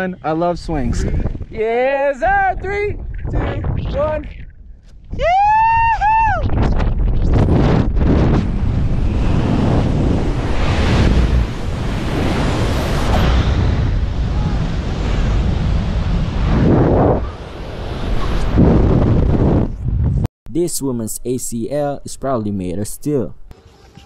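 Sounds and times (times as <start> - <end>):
wind buffeting microphone: 0.4 - 20.3.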